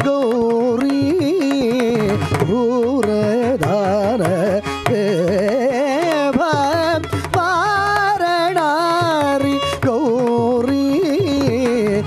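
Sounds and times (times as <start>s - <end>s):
man singing melismatic line: 0.0s - 12.0s.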